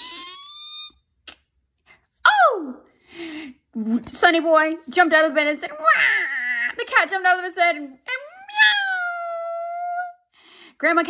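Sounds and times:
woman's vocal squeak: 0.0 - 1.3.

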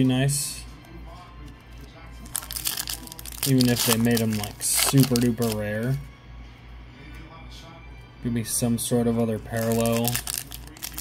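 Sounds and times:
foil wrapper crinkling: 2.2 - 6.0, 9.5 - 11.0.

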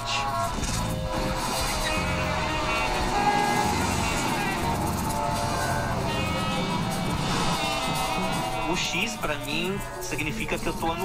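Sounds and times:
road traffic: 0.0 - 10.4
soft background music: 0.0 - 11.0
bus going by: 0.6 - 8.8.

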